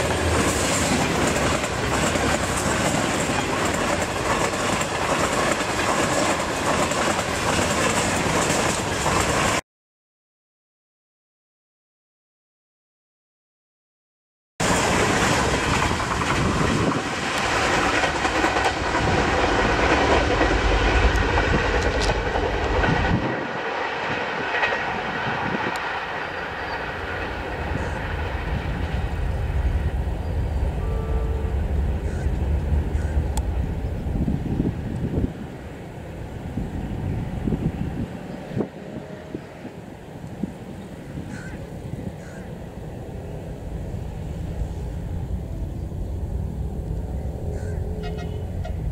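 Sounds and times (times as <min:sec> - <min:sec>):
train rushing noise: 0:00.0 - 0:09.6, 0:14.6 - 0:48.9
train wheels clattering over rail joints: 0:00.0 - 0:09.6, 0:14.6 - 0:29.4.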